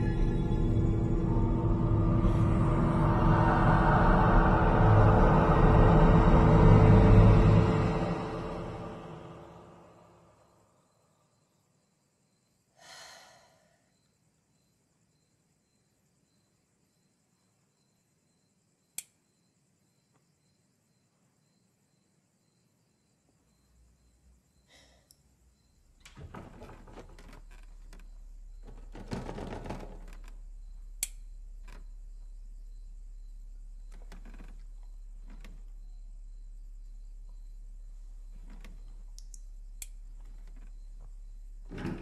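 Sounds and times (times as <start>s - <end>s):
low drone: 0.0s - 10.4s.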